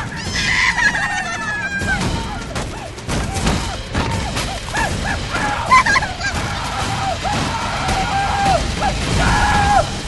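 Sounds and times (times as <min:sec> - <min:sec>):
cartoon wavering scream: 0:00.0 - 0:02.4.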